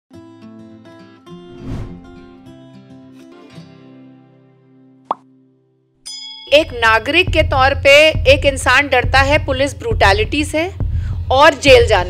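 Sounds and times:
acoustic guitar music: 0:00.1 - 0:06.0.

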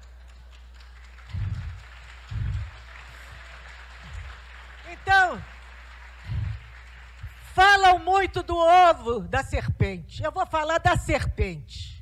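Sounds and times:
faint audience applause: 0:00.0 - 0:08.1
dull low thumps: 0:01.3 - 0:02.7.

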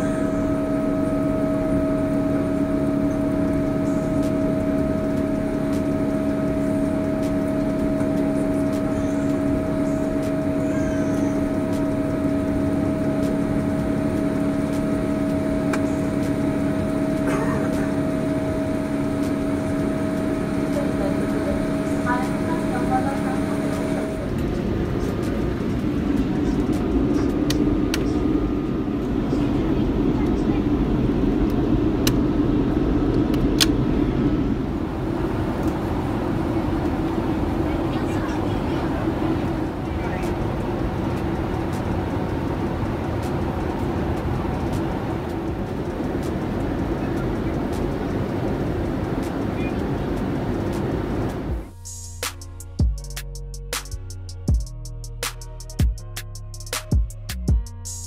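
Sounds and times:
faint voices: 0:00.0 - 0:31.5, 0:34.8 - 0:51.6
airplane cabin noise: 0:00.0 - 0:53.0
jet engine noise with held tones: 0:00.0 - 0:58.0.

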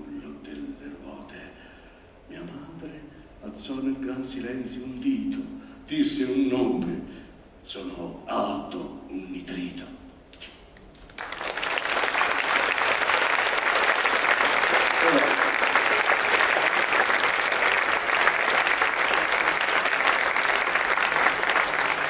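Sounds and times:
audience applauding: 0:11.0 - 0:22.0.

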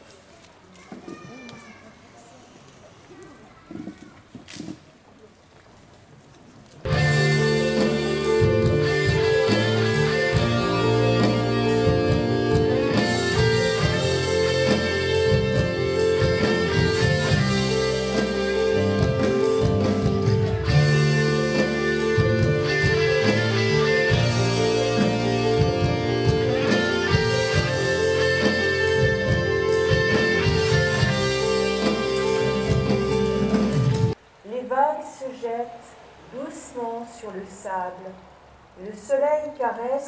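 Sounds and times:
live rock band playing: 0:06.9 - 0:34.2.

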